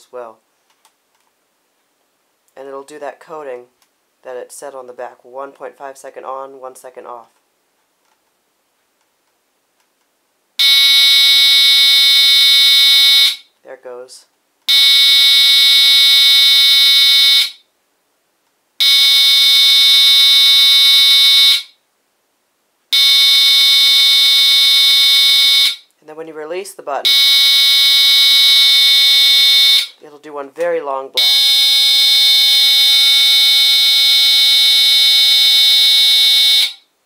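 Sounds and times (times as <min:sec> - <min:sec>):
smoke alarm horn blasts: 0:10.6 - 0:13.5, 0:14.7 - 0:17.6, 0:18.8 - 0:21.8, 0:23.0 - 0:25.9, 0:27.0 - 0:30.0, 0:31.2 - 0:36.9.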